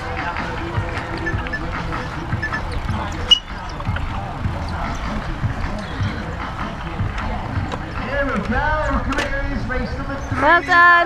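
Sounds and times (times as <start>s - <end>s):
distant chatter of voices: 0.0s - 11.0s.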